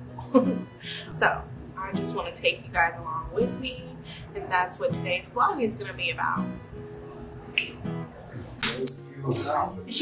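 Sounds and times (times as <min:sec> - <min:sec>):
guitar music: 0:00.0 - 0:10.0
finger snaps: 0:07.5 - 0:07.8.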